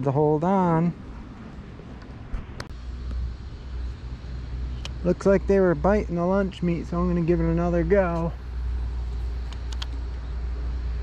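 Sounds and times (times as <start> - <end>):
low outdoor rumble: 0.0 - 11.0
sharp click: 4.7 - 5.0, 9.4 - 10.0.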